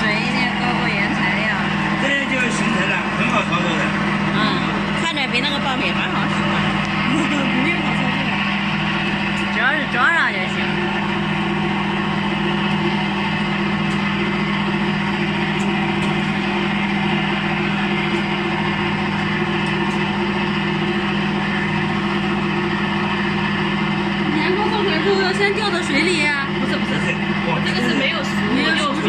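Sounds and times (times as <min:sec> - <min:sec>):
voices: 0:00.0 - 0:11.1, 0:24.2 - 0:29.0
machine motor humming: 0:00.0 - 0:29.0.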